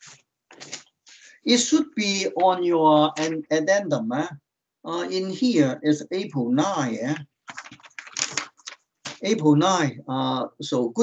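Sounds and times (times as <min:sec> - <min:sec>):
computer keyboard typing: 0:07.0 - 0:09.2.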